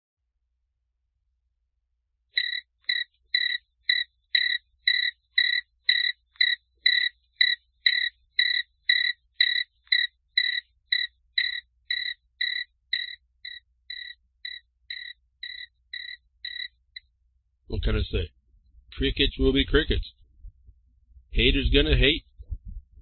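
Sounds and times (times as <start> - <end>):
cricket chirping: 2.4 - 17.0.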